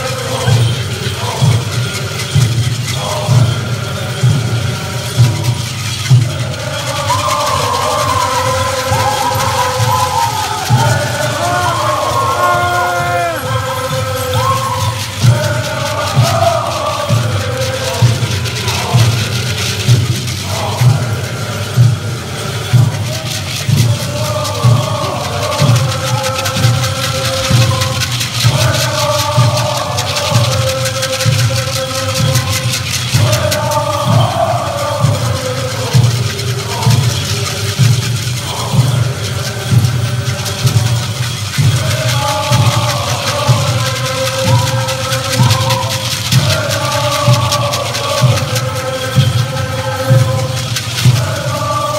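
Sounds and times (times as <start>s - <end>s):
group chanting in unison: 0.0s - 51.9s
steady drumbeat: 0.0s - 51.9s.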